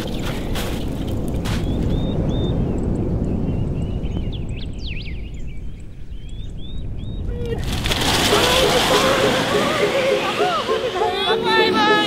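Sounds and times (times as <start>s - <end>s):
wind buffeting microphone: 0.0s - 12.0s
snow tube running over snow: 7.5s - 12.0s.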